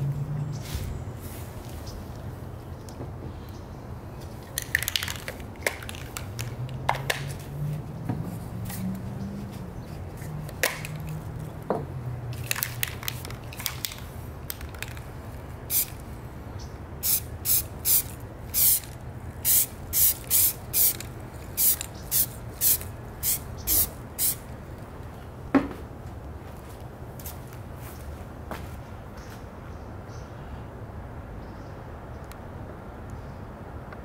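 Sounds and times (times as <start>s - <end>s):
spray paint can hissing: 10.2s - 11.2s, 12.3s - 15.1s, 15.7s - 16.1s, 17.0s - 24.5s.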